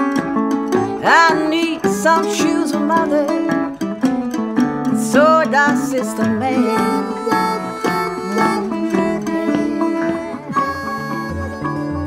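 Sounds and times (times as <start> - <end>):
acoustic guitar and plucked strings: 0.0 - 12.0
sustained melody notes: 0.0 - 12.0.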